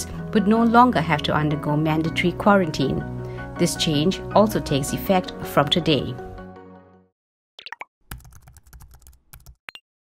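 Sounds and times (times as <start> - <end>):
keyboard typing clicks: 7.6 - 9.8.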